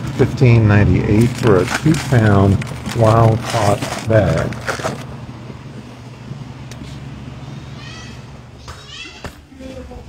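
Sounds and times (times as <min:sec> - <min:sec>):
refrigeration and ventilation hum: 0:00.0 - 0:10.0.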